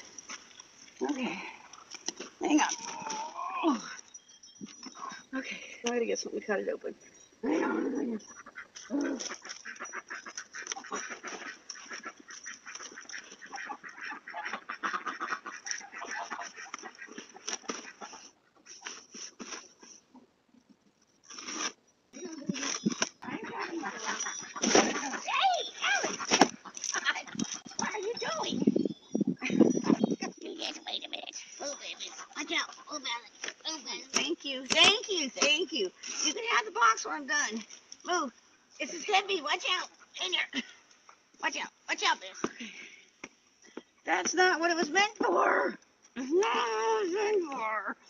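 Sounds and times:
ducks quacking: 7.6s - 18.7s, 23.2s - 25.3s, 29.4s - 34.0s.

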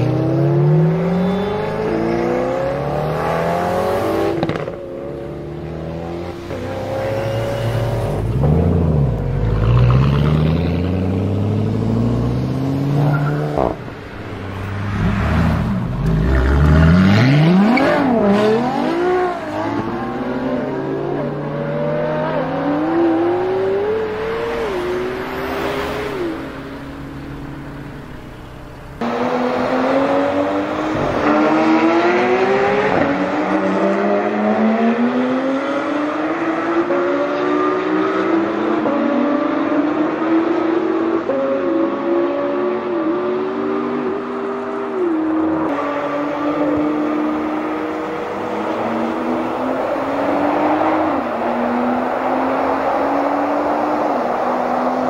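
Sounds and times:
sports car engines accelerating: 0.0s - 55.0s.

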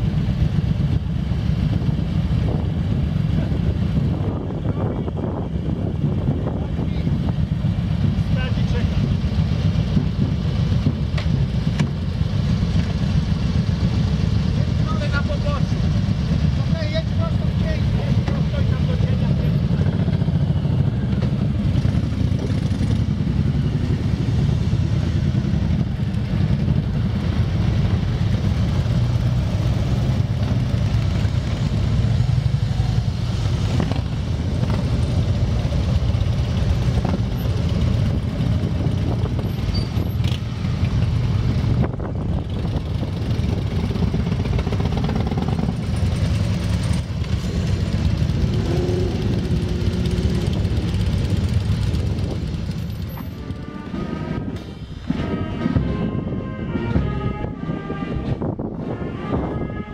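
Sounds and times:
motorcycles riding slowly past: 0.0s - 55.4s.

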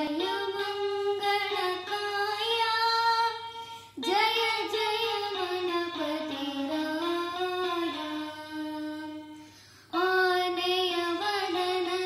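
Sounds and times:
boy singing devotional song: 0.0s - 12.0s.

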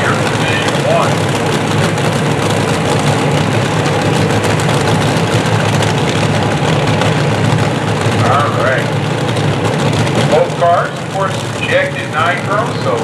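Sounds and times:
dragster engines idling: 0.0s - 13.0s.

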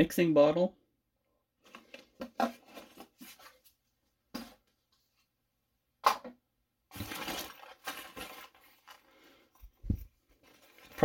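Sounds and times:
packaging rustling: 6.9s - 9.3s.

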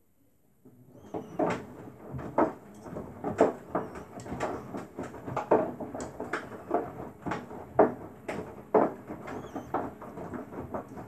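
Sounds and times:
washing machine drum turning: 1.0s - 11.0s
wet laundry sloshing and thumping: 1.0s - 11.0s.

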